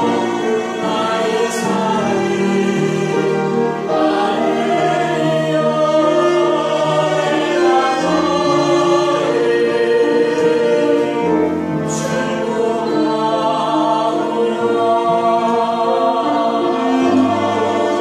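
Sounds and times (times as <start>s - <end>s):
family singing worship song: 0.0s - 18.0s.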